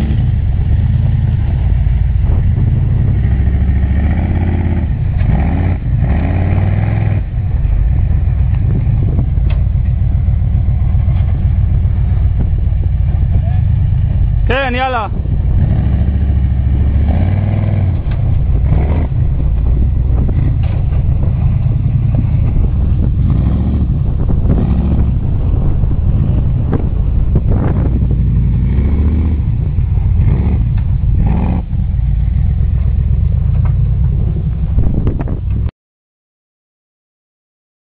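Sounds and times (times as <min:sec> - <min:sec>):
buggy engine rumbling: 0:00.0 - 0:35.7.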